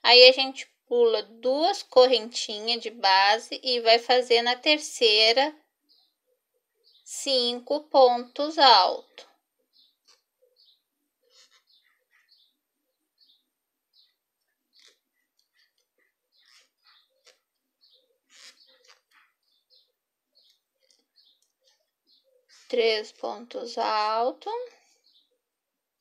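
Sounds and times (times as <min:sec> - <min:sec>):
crochet hook squeaking through yarn: 0:08.4 - 0:12.6, 0:14.7 - 0:25.2.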